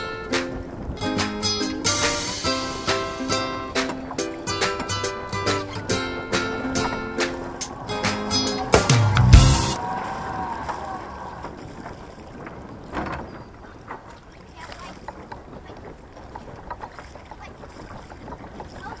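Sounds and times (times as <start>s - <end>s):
background music: 0.0s - 9.8s
wind and water wash: 0.0s - 19.0s.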